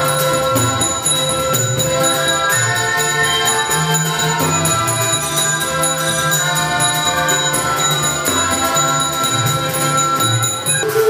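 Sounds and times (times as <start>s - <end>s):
accordion: 0.0s - 11.0s
bar percussion instrument: 0.0s - 11.0s
drums: 0.0s - 11.0s
harmonica: 0.0s - 11.0s.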